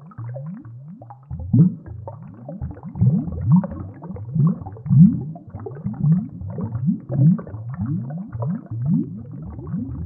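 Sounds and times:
bubbles gurgling underwater: 0.0 - 10.0.

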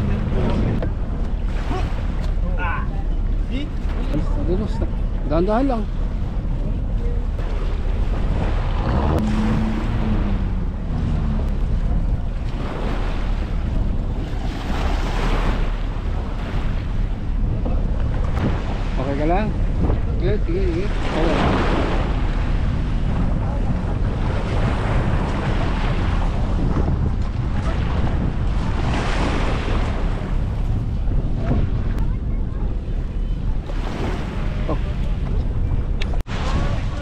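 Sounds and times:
small waves washing on shore: 0.0 - 37.0
wind buffeting microphone: 0.0 - 37.0
voices: 29.9 - 37.0.

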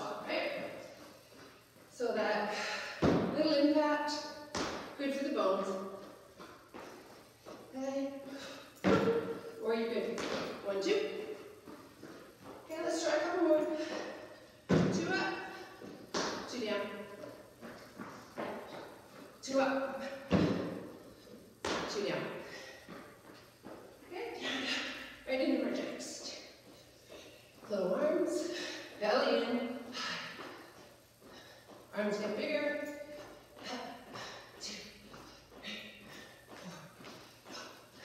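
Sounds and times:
woman talking: 0.0 - 0.8, 1.9 - 2.7, 3.3 - 4.3, 5.0 - 6.0, 7.8 - 11.4, 12.7 - 14.2, 14.8 - 15.8, 16.4 - 17.2, 19.4 - 20.2, 21.8 - 22.5, 24.1 - 26.6, 27.6 - 29.9, 32.0 - 35.0
feet thumping on step platform: 2.9 - 3.6, 4.5 - 5.0, 8.8 - 19.4, 20.1 - 21.0, 21.6 - 23.9.

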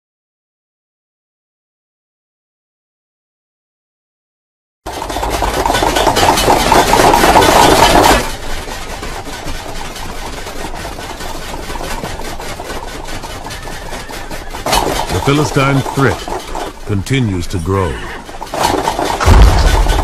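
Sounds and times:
weapons beating against shields: 4.9 - 20.0.

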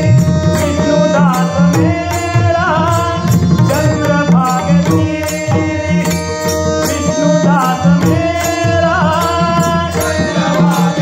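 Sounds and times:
harmonium chords: 0.0 - 11.0
man singing: 0.0 - 11.0.

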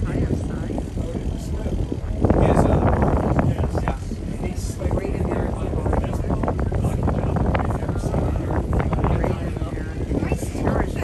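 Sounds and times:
boat engine rumble: 0.0 - 11.0
people talking indistinctly: 0.0 - 11.0
wind on microphone: 0.0 - 11.0.

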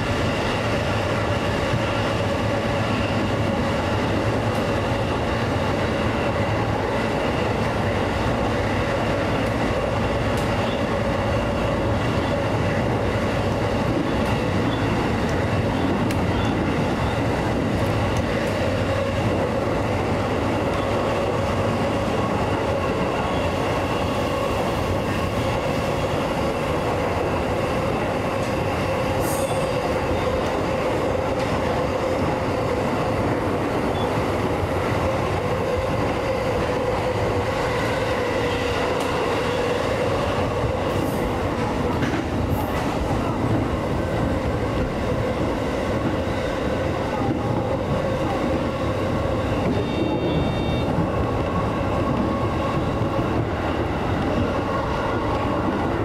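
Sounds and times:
electric train roaring in tunnel: 0.0 - 56.0.

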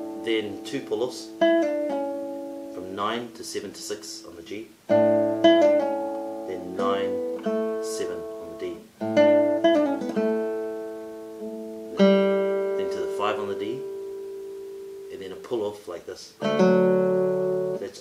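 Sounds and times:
classical guitar playing: 0.0 - 4.0, 4.8 - 15.8, 16.4 - 18.0.

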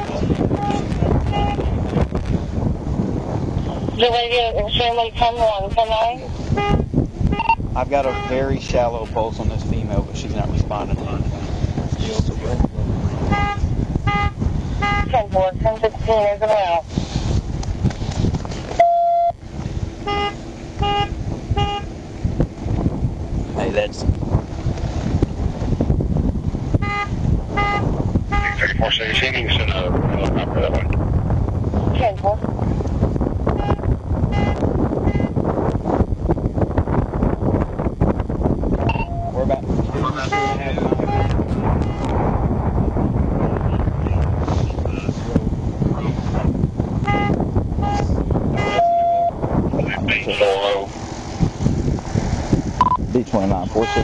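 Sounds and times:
roadside traffic: 0.0 - 54.0
wind rumble on microphone: 0.0 - 54.0
short electronic beeps: 7.4 - 8.4, 18.8 - 19.4, 38.9 - 39.4, 47.1 - 49.4, 52.8 - 53.0
indistinct voices: 28.4 - 31.0, 38.9 - 42.2, 47.1 - 51.0.

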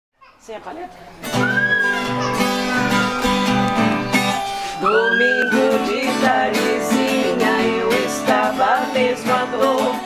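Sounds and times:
acoustic guitars strumming: 1.1 - 10.0
woman singing: 4.8 - 10.0.

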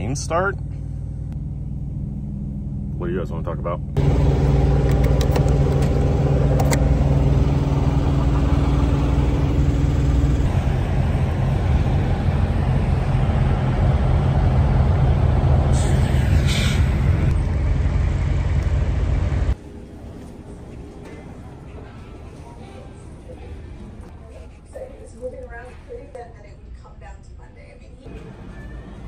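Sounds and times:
diesel truck engines idling: 3.9 - 24.0.

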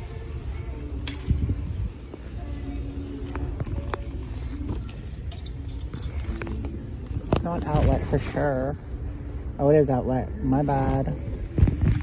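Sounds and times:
metal hangers clinking on rack: 0.9 - 1.8, 4.6 - 6.7.

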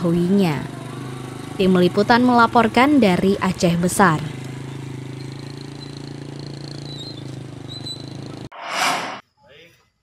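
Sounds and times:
small motorcycle engine running: 0.0 - 8.5
whoosh transition effect: 8.5 - 9.2.

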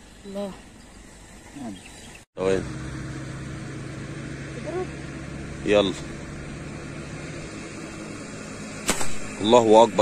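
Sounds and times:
gunshot: 8.8 - 9.4.

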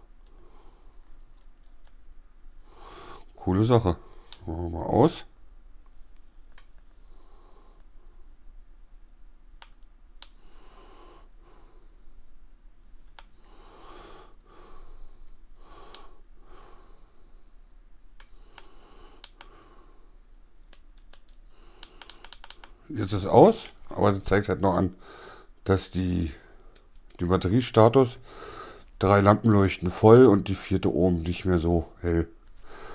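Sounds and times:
soft breaths: 0.0 - 1.9, 2.5 - 4.7, 5.3 - 8.8, 10.2 - 27.2, 28.0 - 29.1, 31.8 - 32.9.

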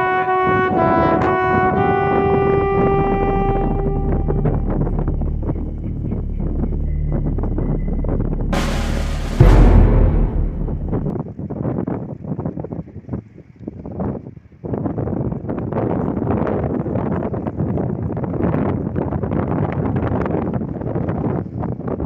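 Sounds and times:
wind buffeting microphone: 10.8 - 22.0.

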